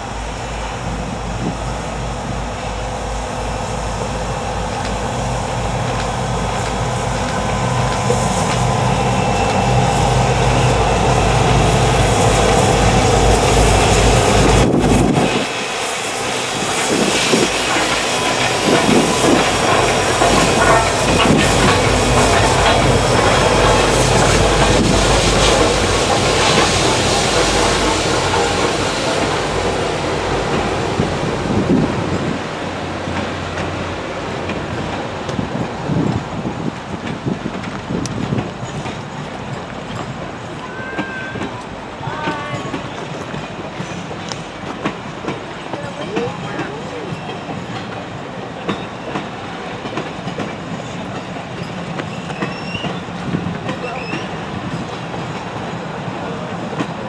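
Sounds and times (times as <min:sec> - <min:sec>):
passing locomotives: 0:00.0 - 0:57.0
train wheels on rails: 0:00.0 - 0:57.0.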